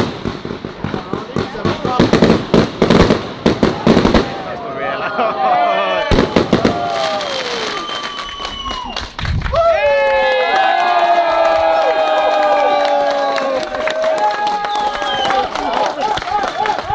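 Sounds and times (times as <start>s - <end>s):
firework bangs: 0.0s - 4.6s, 6.0s - 8.4s
crowd cheering and whooping: 3.8s - 16.9s.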